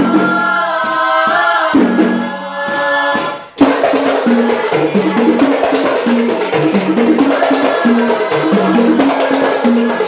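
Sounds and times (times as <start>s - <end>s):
frame drums with jingles: 0.0s - 10.0s
women singing in unison: 0.0s - 10.0s.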